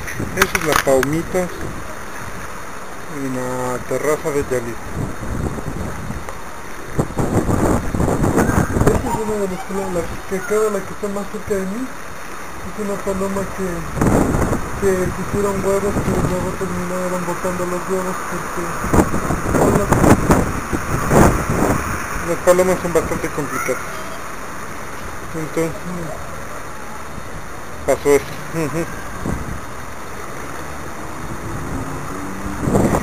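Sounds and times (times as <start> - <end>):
wind buffeting microphone: 0.0 - 2.7, 3.8 - 11.6, 13.4 - 23.6, 28.8 - 30.1, 30.9 - 33.0.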